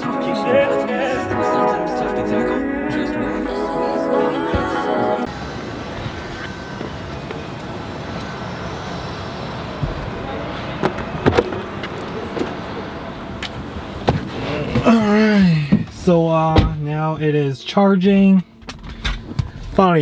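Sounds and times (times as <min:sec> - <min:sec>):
background music: 0:00.0 - 0:05.3
traffic noise: 0:00.0 - 0:17.7.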